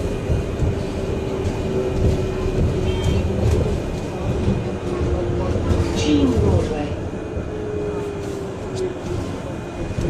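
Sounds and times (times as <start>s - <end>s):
bus road rumble: 0.0s - 10.0s.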